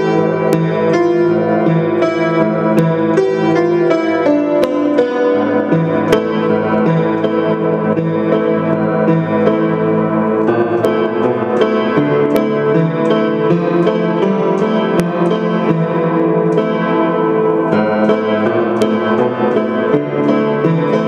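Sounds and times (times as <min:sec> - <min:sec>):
piano playing ringing chords: 0:00.0 - 0:21.0.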